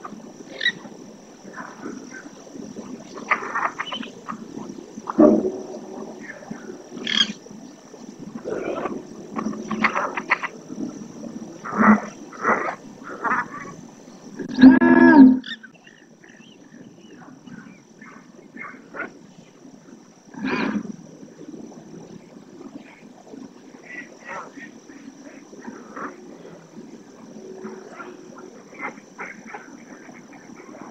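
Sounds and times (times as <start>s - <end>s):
ducks quacking: 7.0s - 7.4s.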